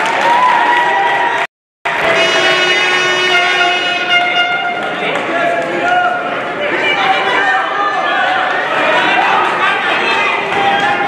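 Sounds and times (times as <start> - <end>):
horn-like signal of steady tones: 1.9 - 4.9
hall noise: 1.9 - 11.0.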